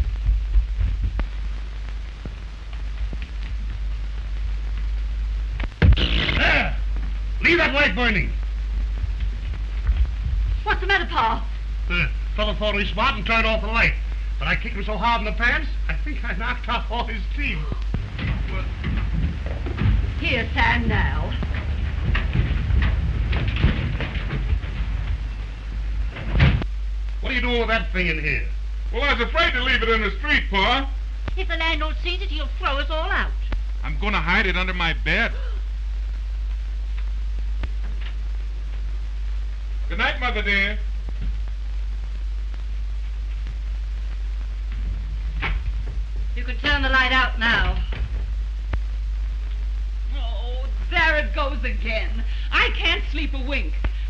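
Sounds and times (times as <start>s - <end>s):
faint crackles: 0.0s - 54.0s
film soundtrack hum and hiss: 0.0s - 54.0s
sharp thump: 5.8s - 6.4s
irregular knocks: 18.0s - 26.6s.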